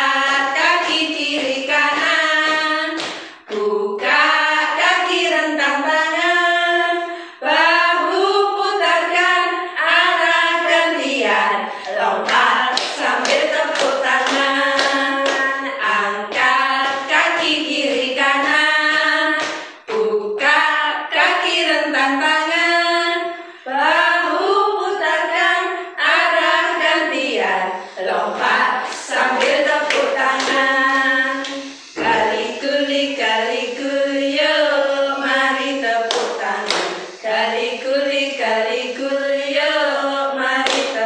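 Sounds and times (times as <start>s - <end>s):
women singing together: 0.0s - 41.0s
sharp hand claps: 0.6s - 4.3s, 11.8s - 20.1s, 28.3s - 33.7s, 35.2s - 37.5s, 40.6s - 41.0s.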